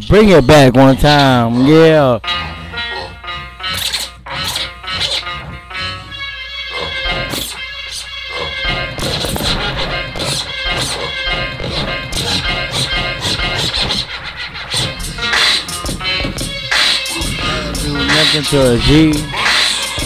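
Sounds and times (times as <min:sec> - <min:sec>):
record scratching: 0:00.0 - 0:20.0
hip-hop beat: 0:00.1 - 0:20.0.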